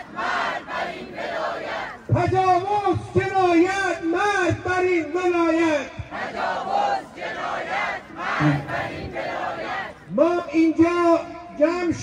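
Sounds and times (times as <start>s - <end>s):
crowd chanting in unison: 0.0s - 2.2s, 6.0s - 10.1s
man shouting through a loudspeaker: 2.1s - 6.1s, 10.1s - 12.0s.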